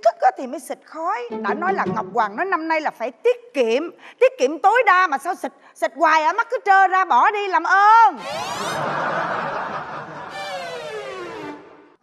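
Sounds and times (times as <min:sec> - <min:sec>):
performer's voice: 0:01.3 - 0:02.2
audience laughing: 0:08.2 - 0:11.7.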